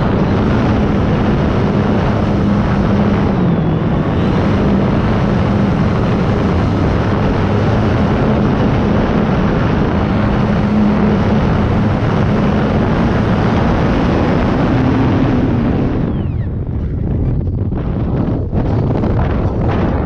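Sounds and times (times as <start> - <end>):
electric motor and propeller hum: 0.0 - 20.0
wind rush on microphone: 0.0 - 20.0.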